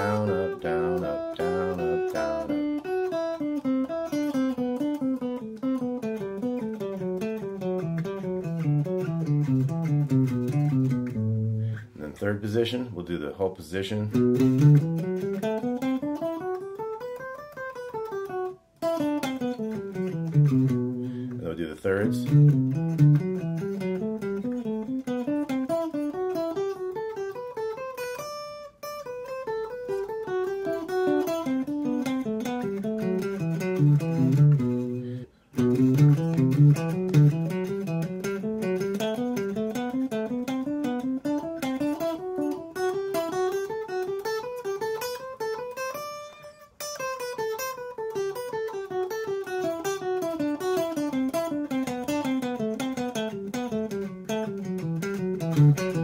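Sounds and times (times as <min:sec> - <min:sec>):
clean electric guitar scale: 0:00.0 - 0:02.9.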